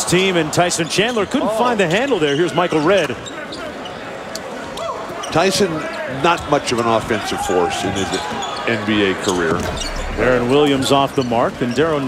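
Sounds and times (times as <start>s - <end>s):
crowd murmur: 9.0s - 11.2s.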